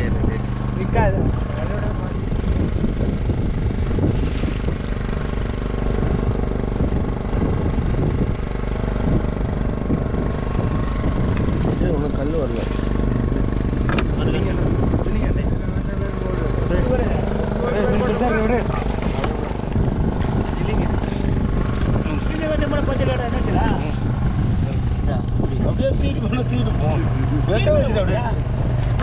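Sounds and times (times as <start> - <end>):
boat motor droning: 0.0 - 29.0
crew talking: 17.7 - 24.0.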